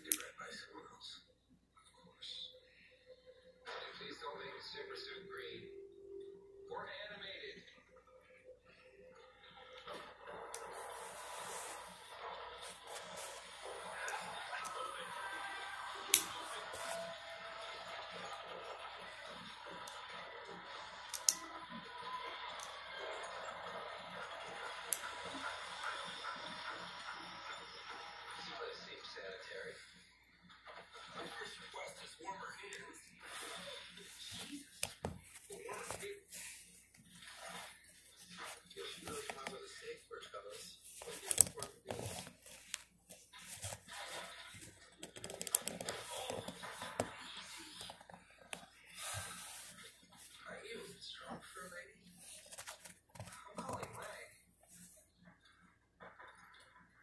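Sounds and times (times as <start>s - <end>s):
person speaking: 32.6s - 37.0s, 37.6s - 54.9s.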